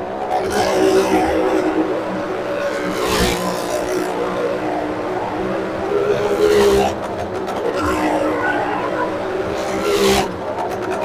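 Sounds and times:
motorcycle engine running hard: 0.0 - 11.0.

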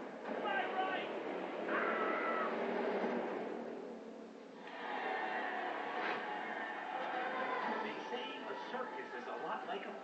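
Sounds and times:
animated animal cry: 1.7 - 2.6.

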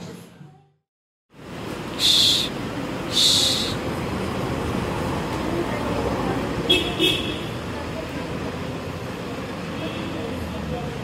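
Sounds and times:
road traffic noise: 1.3 - 11.0.

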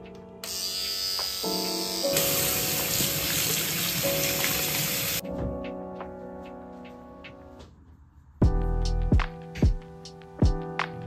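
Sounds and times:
background music: 0.0 - 11.0
water running from faucet: 2.1 - 5.2.

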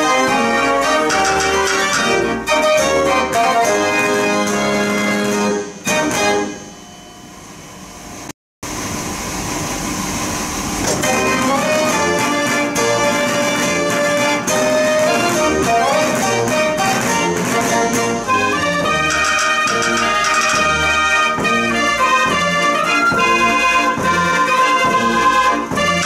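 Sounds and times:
dance organ playing: 0.0 - 5.5, 11.0 - 26.0.

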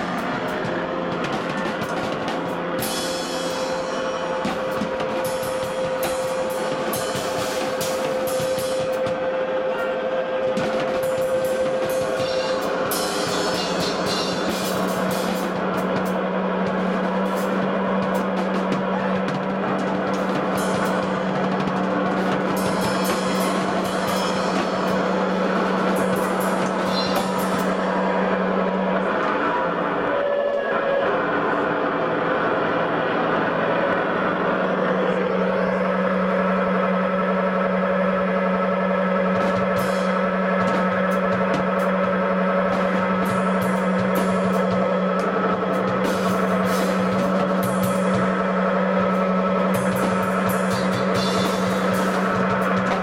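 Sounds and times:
drum kit playing: 0.0 - 29.1, 39.0 - 53.0
low droning tone: 0.0 - 53.0.

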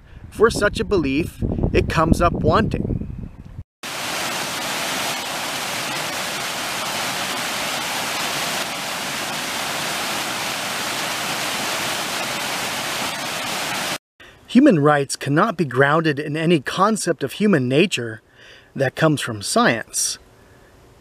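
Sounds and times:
waterfall rushing over rocks: 3.8 - 14.0.

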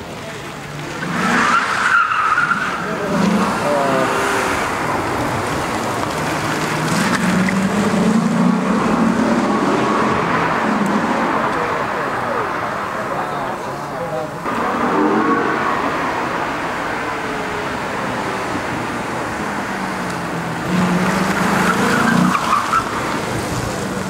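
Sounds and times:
crowd voices: 0.0 - 24.0.

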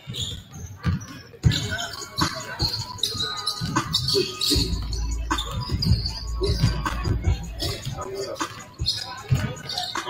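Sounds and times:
basketballs bouncing on hardwood: 0.0 - 1.8.

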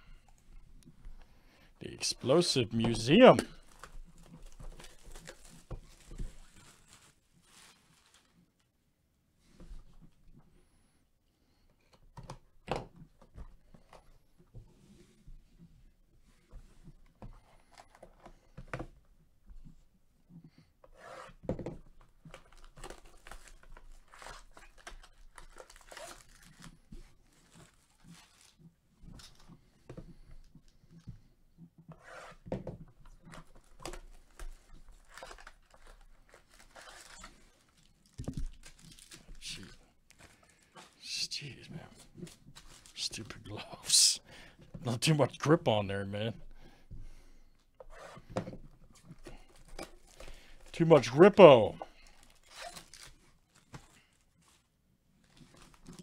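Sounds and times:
plastic wrap crackling: 3.5 - 8.6, 22.4 - 28.6, 33.6 - 41.0, 51.4 - 56.0.

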